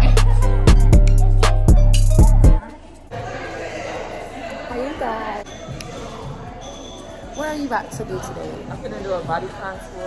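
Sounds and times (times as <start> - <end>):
large room background noise: 2.5 - 10.0.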